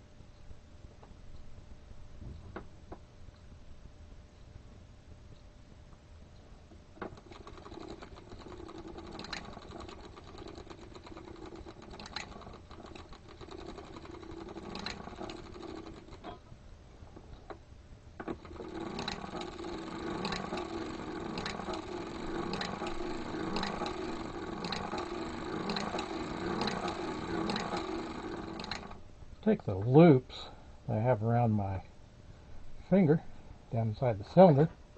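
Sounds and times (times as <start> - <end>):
sock machine clattering: 7.0 - 16.4, 18.2 - 29.0.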